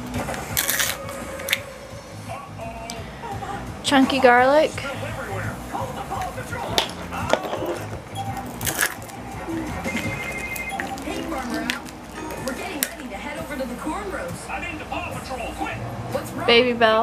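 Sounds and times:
background music: 0.0 - 17.0
foil wrapper crinkling: 0.4 - 1.6, 8.4 - 9.2, 9.9 - 13.0
background speech: 2.3 - 8.5, 9.1 - 17.0.

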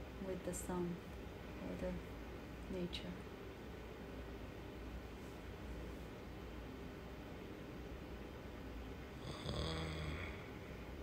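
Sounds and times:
man's throaty snore-like sound: 9.2 - 10.5.

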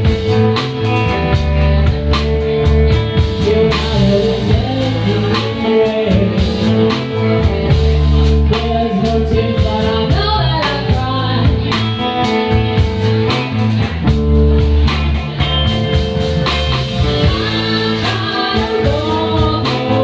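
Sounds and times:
drums beating: 0.0 - 20.0
electric guitars: 0.0 - 20.0
woman singing: 1.7 - 12.1, 17.1 - 20.0.

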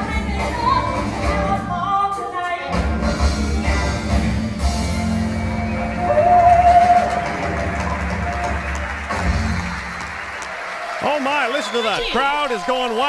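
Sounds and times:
live rock and roll band: 0.0 - 10.2.

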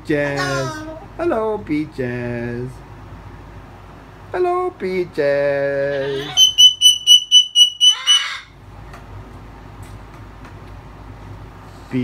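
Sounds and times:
cockatoo harsh squawk: 5.9 - 8.6
cockatoo imitating smoke alarm beeps: 6.2 - 8.5.

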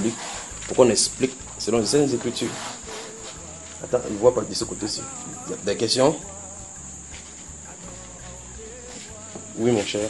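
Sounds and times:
man speaking: 0.0 - 2.6, 3.8 - 6.3, 9.6 - 10.0.

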